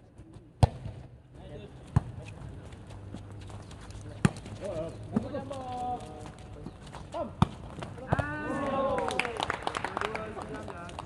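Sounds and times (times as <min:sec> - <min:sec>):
players shouting calls: 0:08.0 - 0:09.4.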